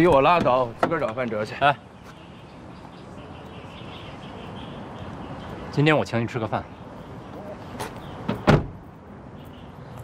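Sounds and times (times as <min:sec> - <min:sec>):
car door slamming: 0:08.3 - 0:08.8.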